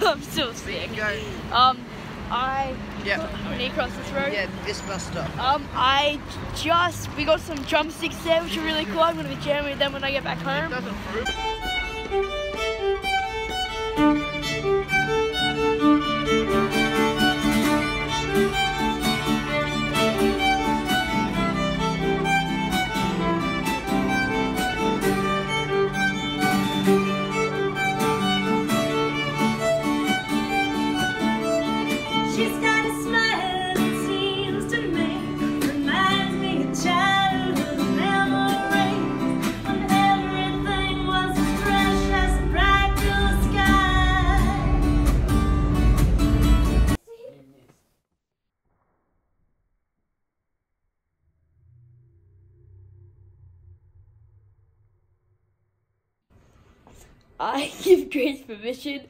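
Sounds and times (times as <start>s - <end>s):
acoustic guitar: 6.6s - 47.0s
violin melody: 7.9s - 47.0s
low rumble: 40.5s - 47.0s, 50.8s - 56.3s.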